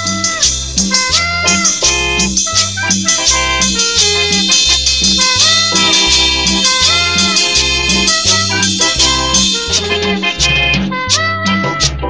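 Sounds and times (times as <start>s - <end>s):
bouncing bass line: 0.0s - 12.0s
percussion: 0.0s - 12.0s
horn section sustained notes: 0.3s - 12.0s.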